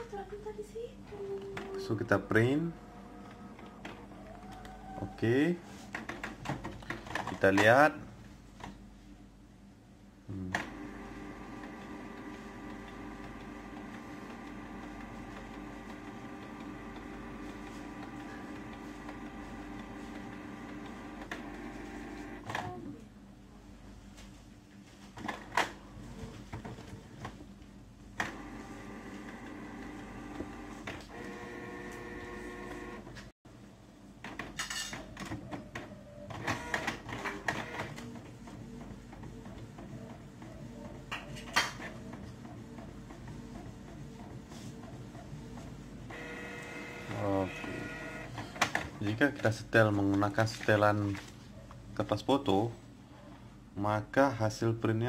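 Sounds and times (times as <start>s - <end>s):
inkjet printer motors running: 1.3s - 7.7s, 10.5s - 22.7s, 28.2s - 33.3s, 35.1s - 50.0s.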